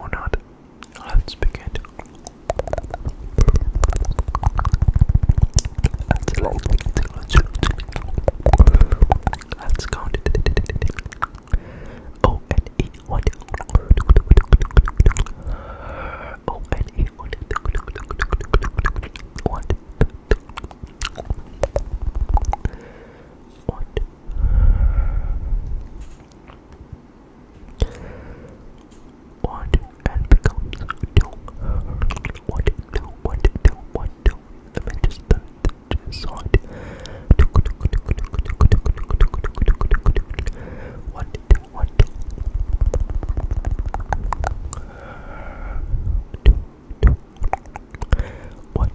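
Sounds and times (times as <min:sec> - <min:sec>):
whispered mouth noises: 0:00.0 - 0:15.5, 0:16.3 - 0:22.8, 0:23.5 - 0:24.2, 0:27.7 - 0:44.9, 0:46.3 - 0:48.9
rapid clicks and crackles: 0:02.1 - 0:11.5, 0:41.4 - 0:44.8.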